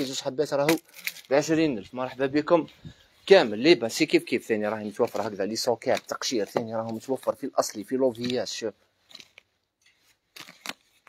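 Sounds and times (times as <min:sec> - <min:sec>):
packaging rustling: 0:00.7 - 0:01.6, 0:04.6 - 0:11.0.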